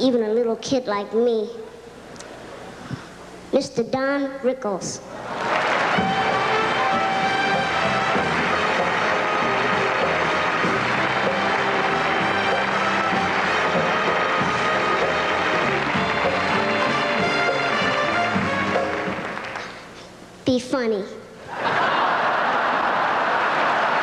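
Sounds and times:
audience applause: 0:05.2 - 0:19.9, 0:21.6 - 0:24.0
entrance music: 0:05.2 - 0:20.0.

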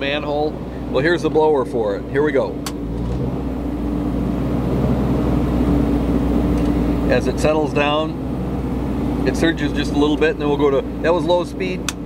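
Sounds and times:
generator engine running: 0:00.0 - 0:12.0
ventilation blower: 0:00.0 - 0:12.0.

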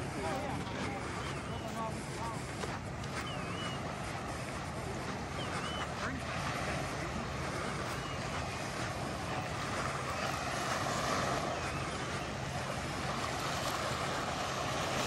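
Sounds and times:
surf washing on beach: 0:00.0 - 0:15.0
wind buffeting microphone: 0:00.0 - 0:15.0.

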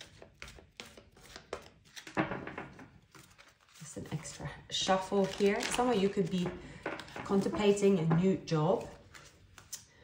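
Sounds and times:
cards shuffling: 0:00.0 - 0:02.2, 0:03.0 - 0:04.4, 0:05.0 - 0:07.8, 0:08.8 - 0:10.0.

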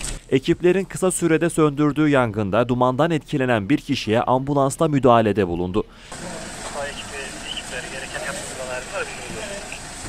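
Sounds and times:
street noise: 0:06.0 - 0:10.0
vehicle engine running: 0:06.1 - 0:10.0.

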